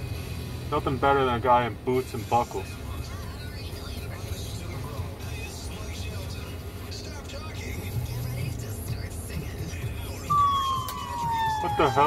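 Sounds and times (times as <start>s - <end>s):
car engine rumble and road noise: 0.0s - 12.0s
country music on car radio: 0.0s - 12.0s.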